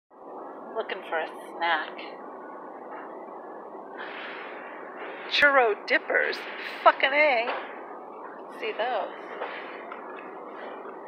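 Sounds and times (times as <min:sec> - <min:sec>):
grocery store background noise: 0:00.3 - 0:11.0.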